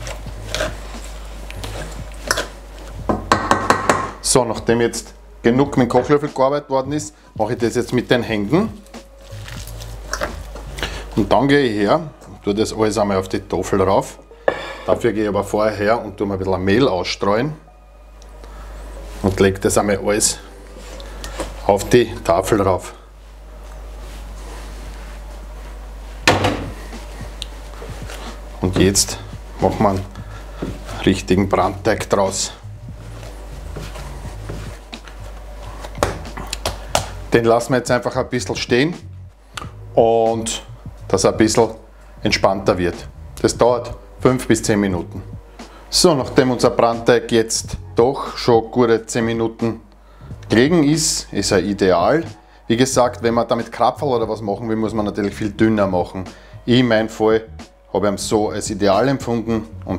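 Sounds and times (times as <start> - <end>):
wooden spoon stirring dough: 0.0 - 4.0
spoon knocking against pot: 3.1 - 4.2.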